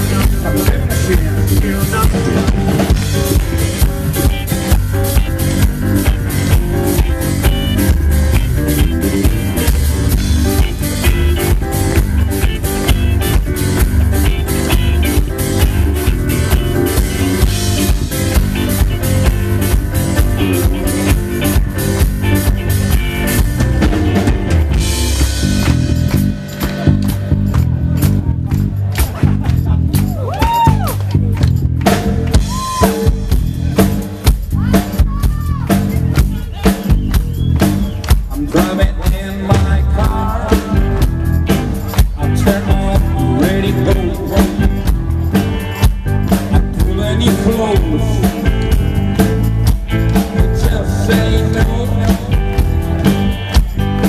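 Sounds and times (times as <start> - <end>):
man singing: 0.0 - 3.6, 38.1 - 45.0, 46.5 - 49.2, 50.1 - 52.9
bass guitar: 0.0 - 54.0
drum kit: 0.0 - 54.0
electric guitars: 0.0 - 54.0
live rock band playing: 0.0 - 54.0.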